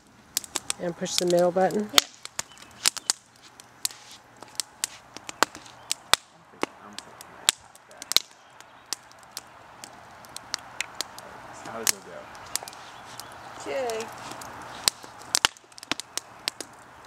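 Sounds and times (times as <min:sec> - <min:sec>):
campfire crackling: 0:00.0 - 0:17.0.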